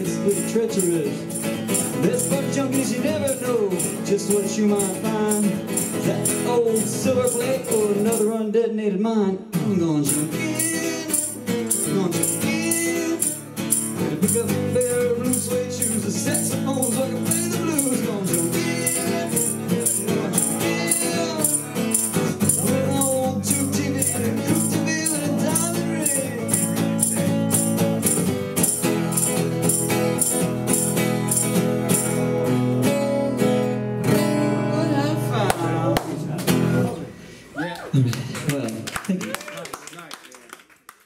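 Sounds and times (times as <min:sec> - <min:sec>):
acoustic guitar blues strumming: 0:00.0 - 0:37.4.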